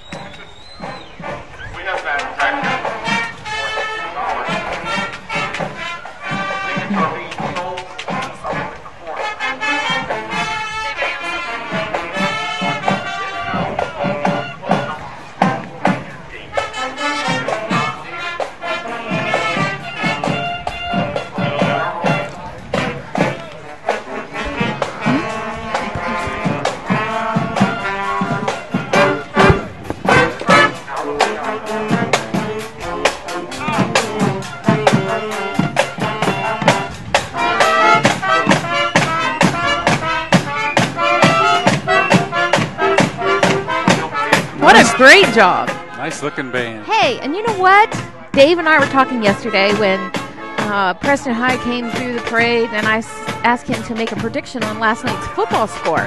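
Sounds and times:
steady drum beat: 0.0s - 56.0s
trumpets saxophones and flutes: 0.0s - 56.0s.

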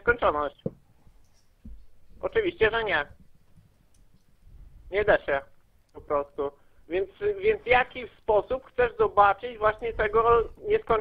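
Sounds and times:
man speaking over telephone: 2.2s - 3.1s, 4.9s - 11.0s
faint clicks: 3.2s - 4.4s.

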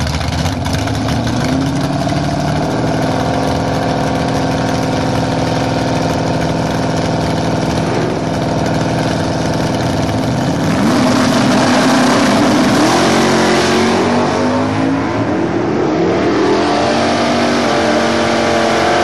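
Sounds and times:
race car engines idling and revving: 0.0s - 19.0s.

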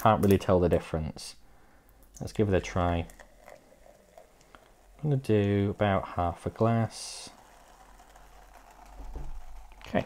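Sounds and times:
cola pouring into glass: 2.2s - 9.9s.

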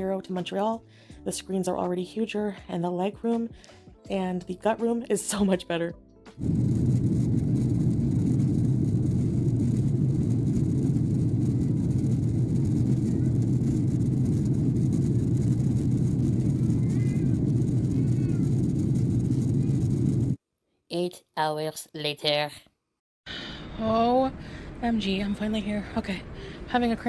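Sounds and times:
airliner cabin roar: 6.4s - 20.4s.

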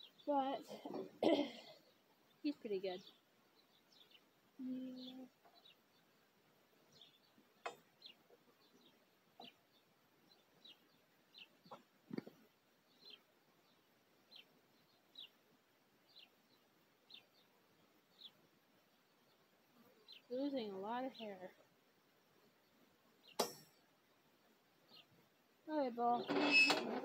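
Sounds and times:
small bird chirping: 1.8s - 15.4s, 16.0s - 21.7s, 24.8s - 26.7s.

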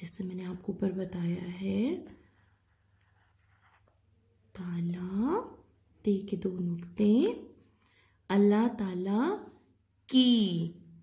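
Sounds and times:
pencil scratching on paper: 2.0s - 4.1s.

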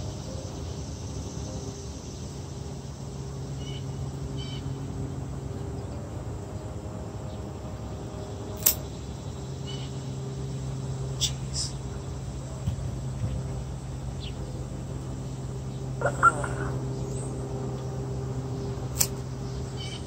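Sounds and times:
steady low hum: 0.0s - 20.0s
pruning shears snipping stem: 8.6s - 8.8s, 19.0s - 19.2s.

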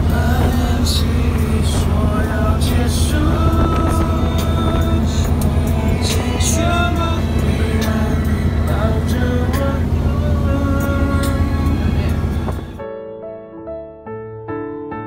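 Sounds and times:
boat engine droning: 0.0s - 12.8s
voices on board: 7.8s - 12.8s.

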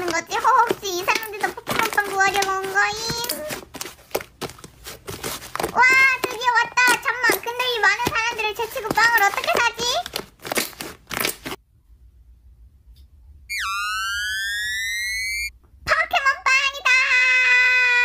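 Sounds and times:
slime crunching crackles: 0.0s - 11.6s.

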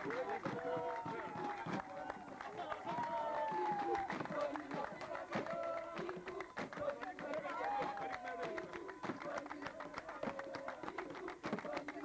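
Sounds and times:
people's voices calling: 0.0s - 12.0s
short irregular claps: 0.0s - 12.0s.

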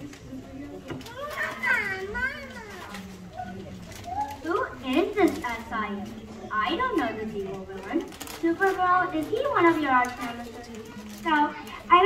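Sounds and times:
child speaking: 1.1s - 3.5s, 8.7s - 12.0s.

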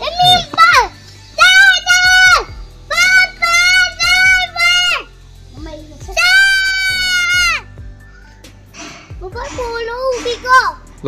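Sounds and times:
child singing: 0.0s - 8.3s.

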